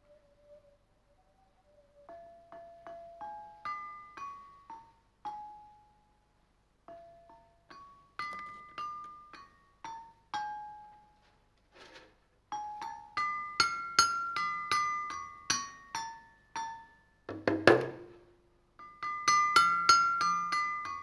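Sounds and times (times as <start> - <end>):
ringing pitched percussion melody: 18.8 - 21.0.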